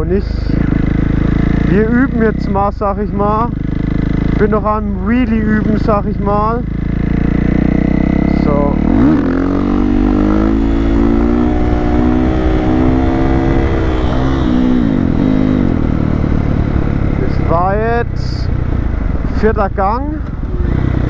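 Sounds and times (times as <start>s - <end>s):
motorcycle engine revving hard: 0.0s - 18.0s, 20.3s - 21.0s.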